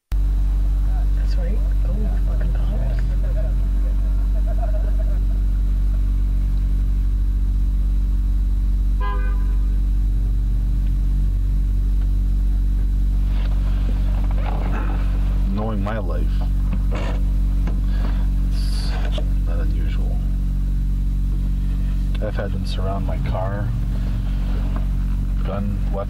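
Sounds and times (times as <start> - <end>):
low hum and rumble: 0.0 - 26.0
car horn toot: 8.9 - 9.8.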